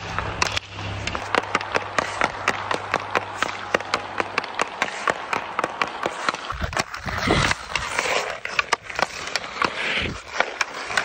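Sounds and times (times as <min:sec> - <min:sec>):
hockey stick clacking on puck: 0:00.0 - 0:11.0
skate blades scraping ice: 0:00.0 - 0:11.0.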